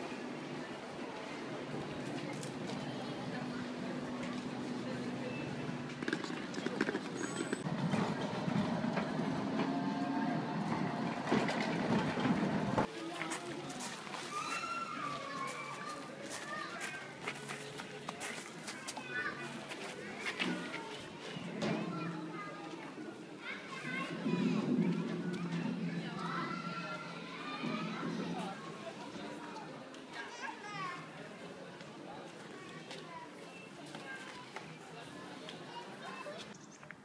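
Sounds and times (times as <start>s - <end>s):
children playing and chattering: 0.0s - 37.0s
people's voices: 0.0s - 37.0s
tram rumbling on rails: 5.8s - 12.9s, 21.4s - 29.0s.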